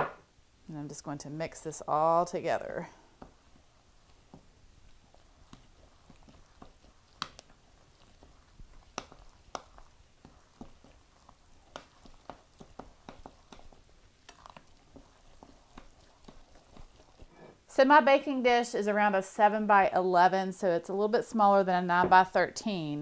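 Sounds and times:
soft wet batter mixing: 0:00.6 - 0:23.0.

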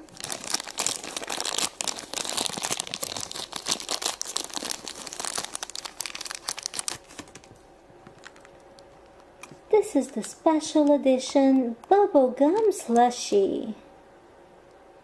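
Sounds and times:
wrapper crinkling: 0:00.0 - 0:09.2.

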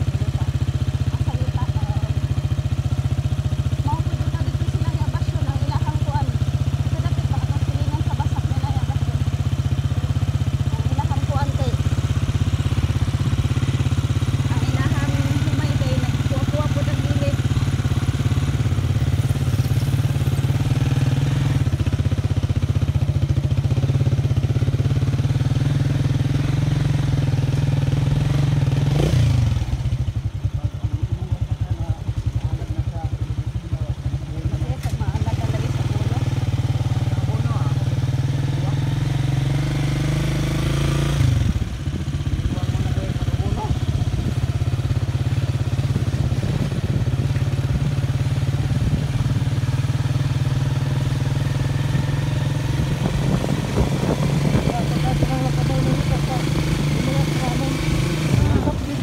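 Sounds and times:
small motorcycle engine running: 0:00.0 - 0:59.0.

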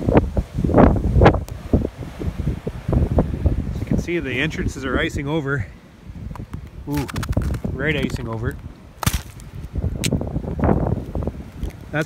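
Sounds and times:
ice cracking: 0:06.4 - 0:10.2
hand scraping snow and ice: 0:06.9 - 0:09.6.

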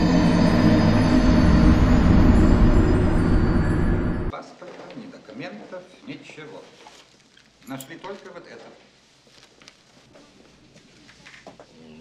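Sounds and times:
low rumbling drone: 0:00.0 - 0:04.3.

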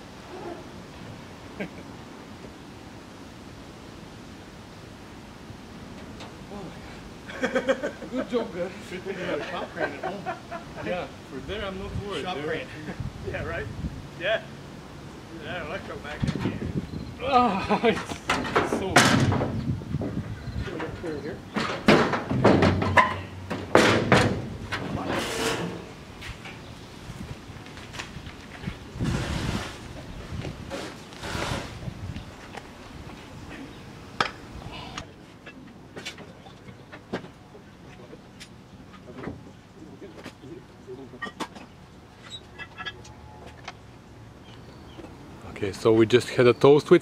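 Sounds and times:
steel stand clanking on trailer: 0:20.8 - 0:25.9.

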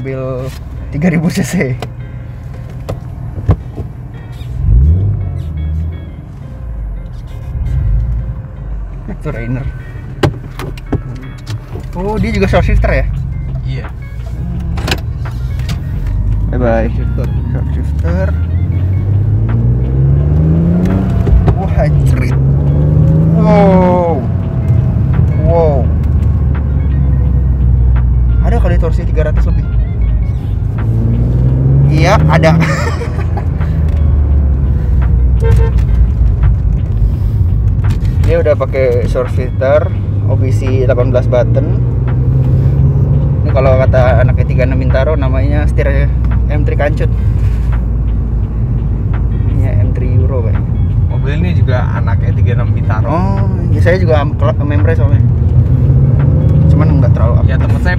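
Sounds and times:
background music: 0:00.0 - 0:57.9
car engine accelerating: 0:00.6 - 0:57.9.

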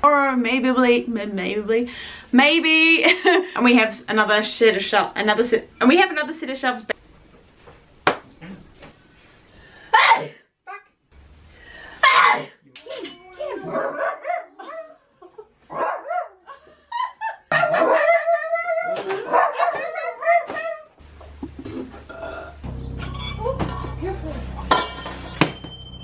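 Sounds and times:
dog barking: 0:13.6 - 0:14.8, 0:15.7 - 0:16.4, 0:17.5 - 0:18.4, 0:19.1 - 0:20.9
dog howling and yelping: 0:17.5 - 0:21.0.

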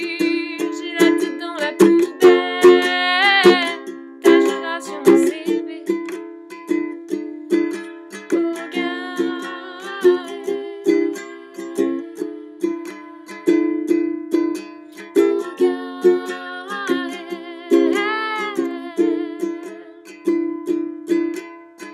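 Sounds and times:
woman singing: 0:00.0 - 0:06.2, 0:08.1 - 0:13.8, 0:15.0 - 0:20.4
ukulele strumming: 0:00.0 - 0:21.9.

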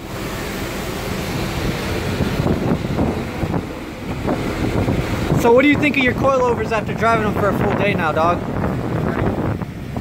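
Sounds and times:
wind buffeting microphone: 0:01.5 - 0:10.0.

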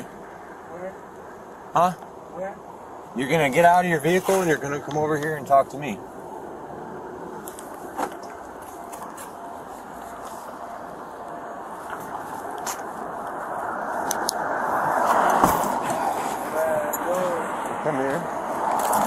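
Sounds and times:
street noise hiss: 0:00.0 - 0:19.0
vehicle passing: 0:02.4 - 0:19.0.

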